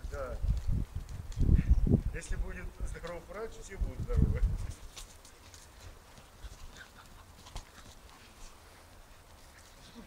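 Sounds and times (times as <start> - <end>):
puppies scuffling: 2.6 - 10.0.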